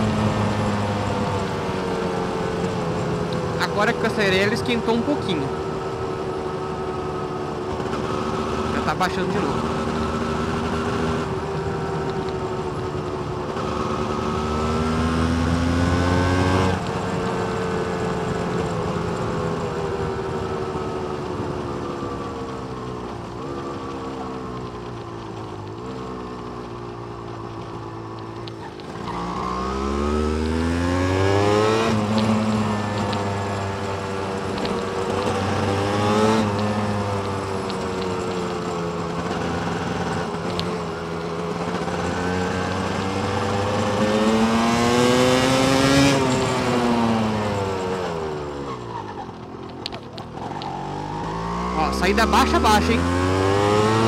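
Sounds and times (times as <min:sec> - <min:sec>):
two-stroke motorcycle engine revving: 0:00.0 - 0:54.0.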